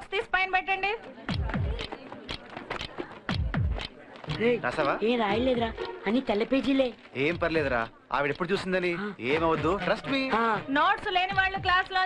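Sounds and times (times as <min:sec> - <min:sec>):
light percussive ticks: 0:01.3 - 0:10.2, 0:11.0 - 0:12.0.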